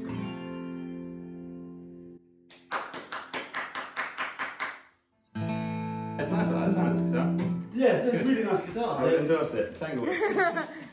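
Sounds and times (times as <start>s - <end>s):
quick hand clapping: 2.5s - 5.0s.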